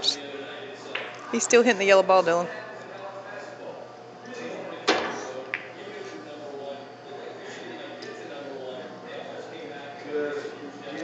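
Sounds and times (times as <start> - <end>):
murmur of voices: 0.0 - 11.0
pool cue striking ball: 4.8 - 5.8.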